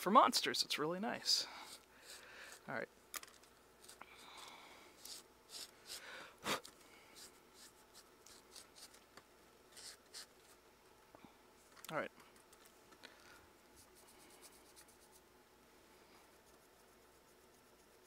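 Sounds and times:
paintbrush strokes: 1.5 - 2.7, 13.8 - 15.3, 16.1 - 18.0.

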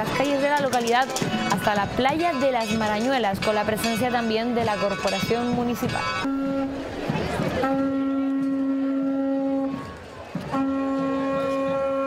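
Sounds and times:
boat horn blasts: 6.1 - 12.0.

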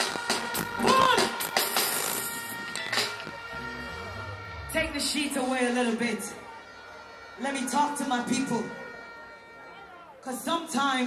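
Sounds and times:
drum beats: 0.0 - 5.8
live band music: 0.0 - 8.0.

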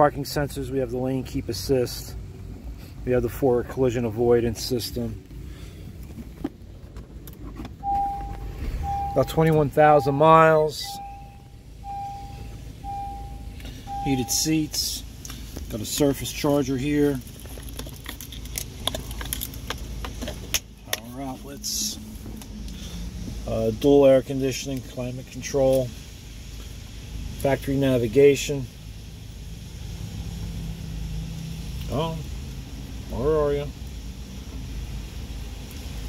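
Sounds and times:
car engine idling in cabin: 0.0 - 30.0, 31.6 - 36.0
low background rumble: 0.0 - 36.0
electronic warning beep: 7.8 - 14.5.

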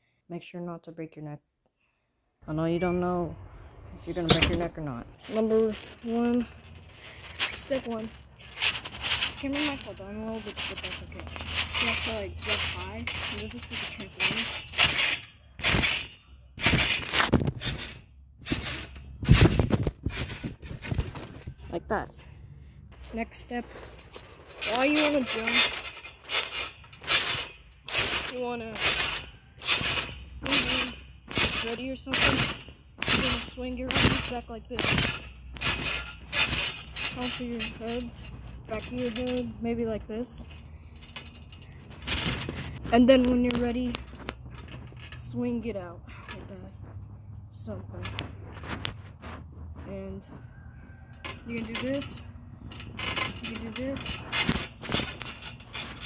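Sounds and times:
trampoline mat rasping: 4.0 - 22.0, 22.9 - 56.0.

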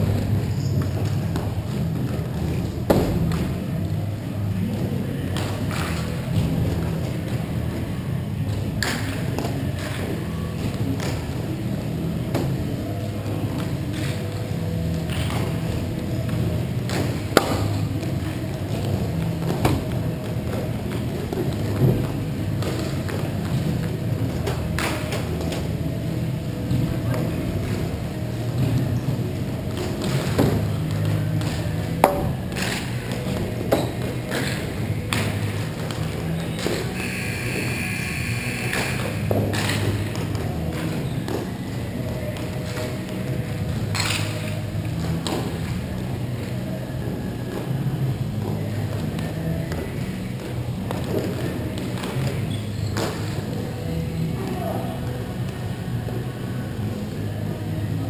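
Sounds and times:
hockey sticks and puck knocking: 8.5 - 11.3, 16.3 - 25.7, 29.7 - 37.0, 38.6 - 41.6, 42.3 - 45.8.

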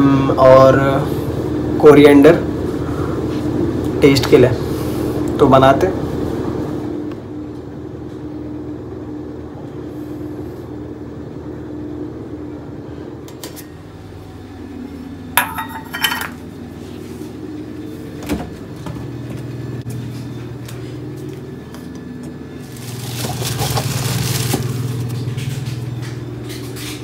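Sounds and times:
steady low hum: 0.0 - 27.0
steel bowls clinking: 15.4 - 16.4.

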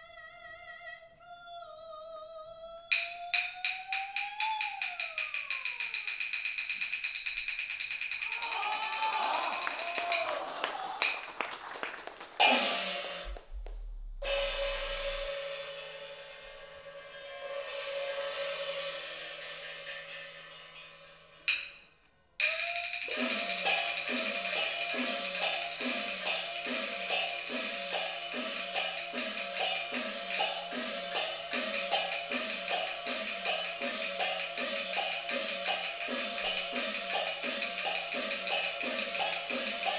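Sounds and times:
drum and clapper strokes: 2.9 - 16.6, 22.4 - 39.9
cymbal or gong crashes: 14.2 - 21.0, 23.1 - 39.9.

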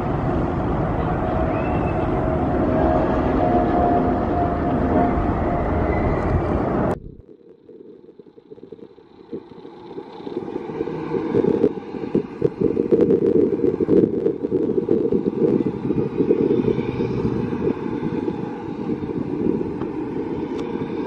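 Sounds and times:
roller coaster rumbling on track: 0.0 - 7.2, 9.2 - 21.0.

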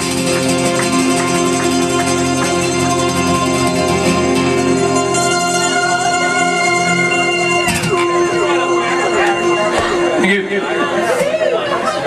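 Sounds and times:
people talking and chattering: 0.0 - 12.0
lingering steady tone: 2.1 - 12.0.

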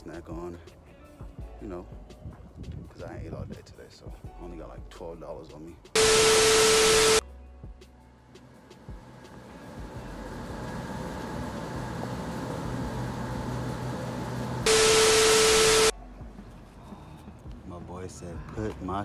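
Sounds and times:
machine hum: 6.0 - 7.2, 9.0 - 15.9
static hiss with beep tone: 6.0 - 7.2, 14.7 - 15.9.

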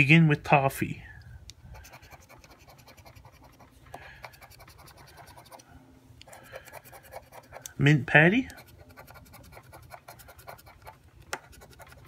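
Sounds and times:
scraping scratch card coating: 1.7 - 5.7, 6.3 - 12.0.

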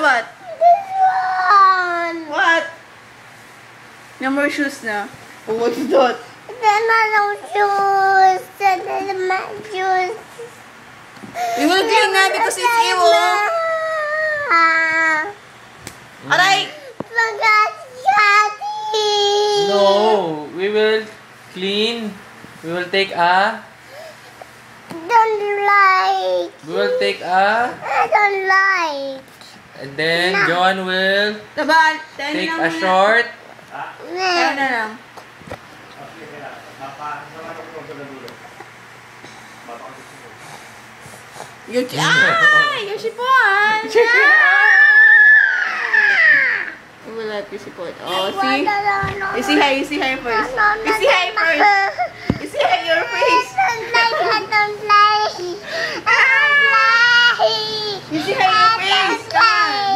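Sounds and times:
child squealing: 0.5 - 2.1, 11.4 - 15.3, 44.1 - 46.8, 50.3 - 54.6, 55.9 - 59.9
young boy crying: 0.5 - 2.2, 11.4 - 15.3, 50.2 - 59.9.

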